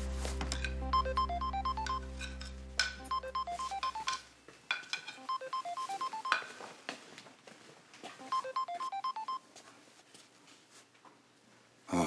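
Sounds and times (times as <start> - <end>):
phone ringtone beeps: 0.8 - 4.2, 5.2 - 6.5, 8.2 - 9.5.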